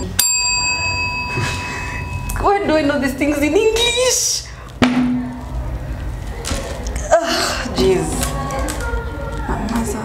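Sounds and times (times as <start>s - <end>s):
desk service bell ringing: 0.0s - 2.9s.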